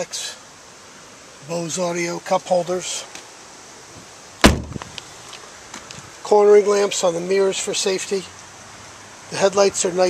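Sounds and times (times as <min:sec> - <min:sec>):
car door slamming shut: 0:04.4 - 0:04.9.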